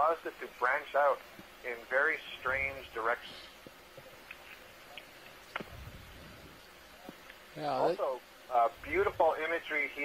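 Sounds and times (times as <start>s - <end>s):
audio feed hiss: 0.0s - 10.0s.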